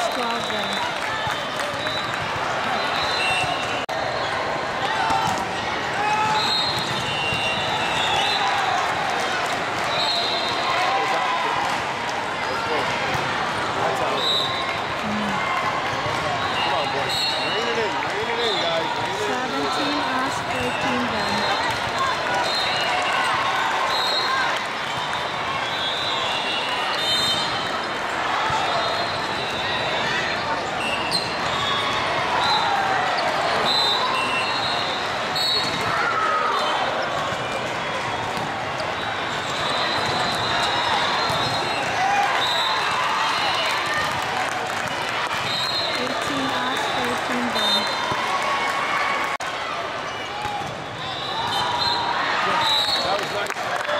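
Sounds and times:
babble of many voices: 0.0s - 6.3s, 6.9s - 23.5s, 43.6s - 51.0s.

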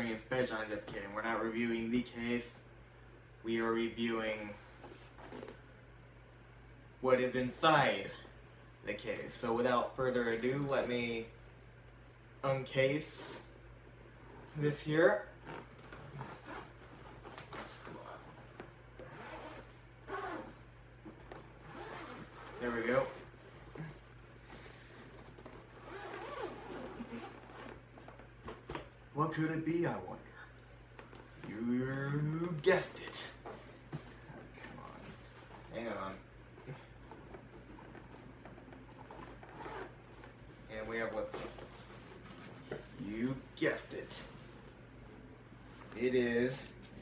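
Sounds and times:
low steady hum: 0.0s - 47.0s
zipper being pulled open: 15.4s - 24.1s, 24.9s - 27.9s, 37.1s - 40.4s.

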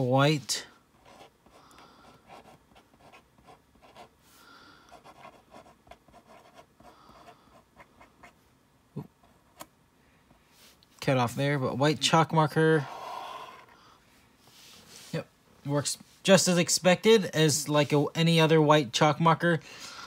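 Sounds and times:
marker scratching on chalkboard: 1.0s - 1.6s, 2.2s - 4.1s, 4.9s - 8.4s.

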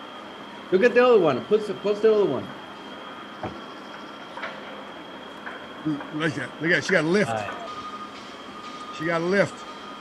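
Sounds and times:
faint outdoor ambience: 0.0s - 10.0s.

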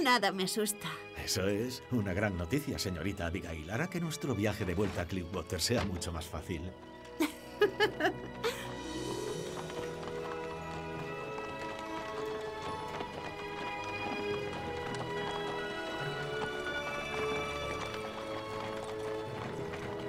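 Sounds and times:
film score music: 0.0s - 20.0s
hoofbeats on dirt: 8.8s - 20.0s.

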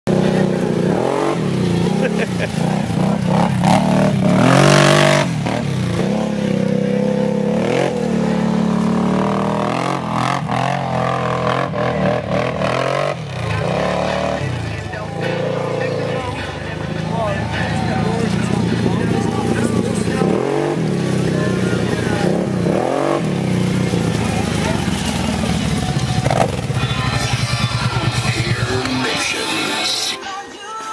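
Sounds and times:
quad engine revving: 0.1s - 30.2s
music playing: 0.1s - 30.9s.

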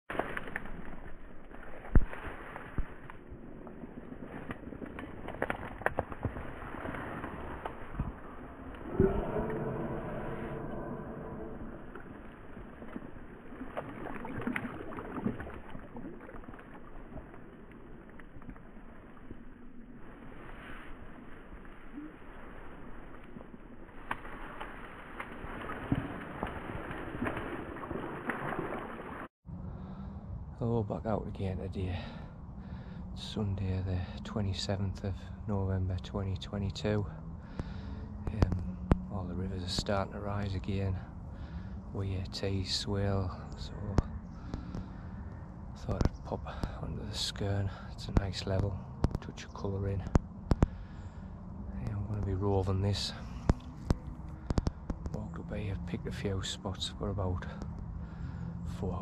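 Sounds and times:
fish splashing at water surface: 4.4s - 29.3s.

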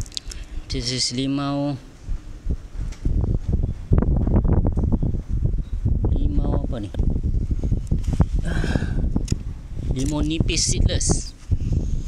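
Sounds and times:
wind buffeting microphone: 1.9s - 12.0s.

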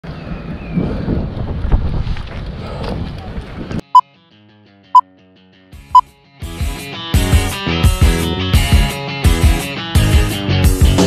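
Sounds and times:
wind buffeting microphone: 0.0s - 3.8s.

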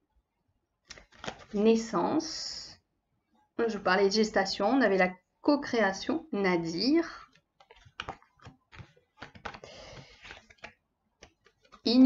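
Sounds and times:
cards rustling: 0.9s - 1.6s, 7.2s - 11.9s
cards tapping on a table: 7.6s - 9.6s.

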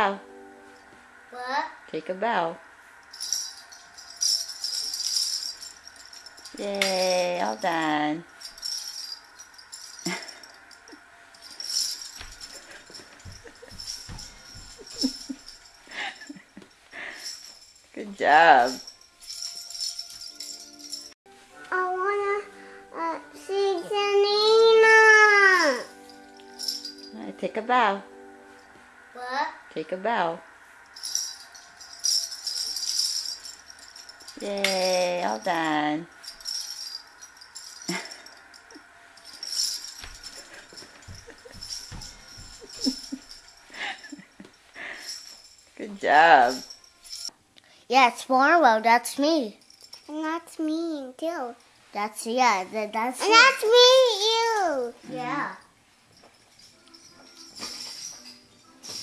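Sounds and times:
toy shaker jingling rattle: 3.1s - 21.2s, 25.6s - 27.2s, 30.9s - 47.3s, 56.3s - 59.0s.

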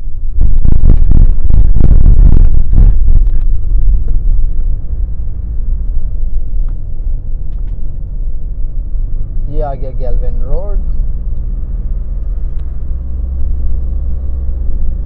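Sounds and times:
car rumbling along road: 0.0s - 15.0s.

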